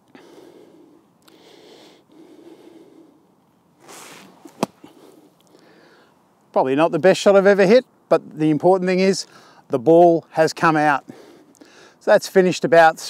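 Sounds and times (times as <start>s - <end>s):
faint breathy rustling: 0.0s - 6.2s
golf club thudding into sand: 3.9s - 4.9s.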